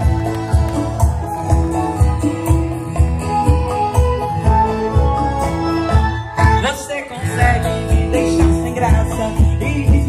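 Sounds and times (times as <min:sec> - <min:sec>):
live band playing country music: 0:00.0 - 0:10.0.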